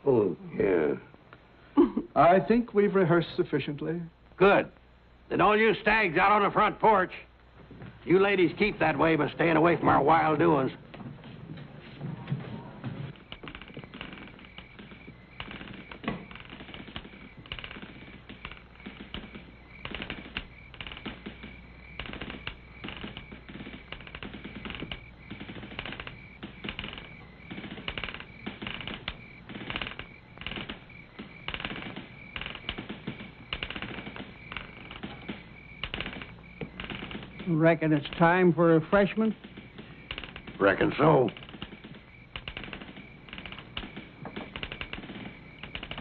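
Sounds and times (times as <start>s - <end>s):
boots knocking on wooden floorboards: 7.5s - 46.0s.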